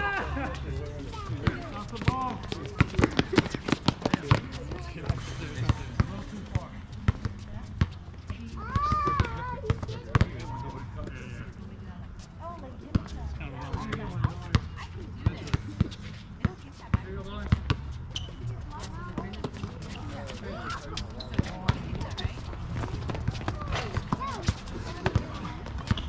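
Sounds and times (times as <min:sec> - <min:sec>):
players shouting and talking: 0:00.0 - 0:11.7, 0:17.0 - 0:26.0
basketball bouncing on hard court: 0:07.1 - 0:10.4, 0:13.7 - 0:18.3, 0:21.3 - 0:26.0.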